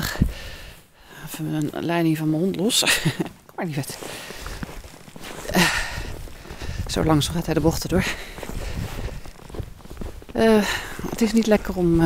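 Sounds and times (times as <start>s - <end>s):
footsteps in snow: 0.2s - 12.0s.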